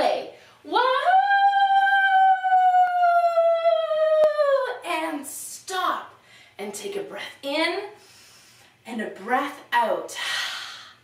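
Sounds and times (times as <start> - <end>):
woman's voice long whooo: 0.8 - 4.8.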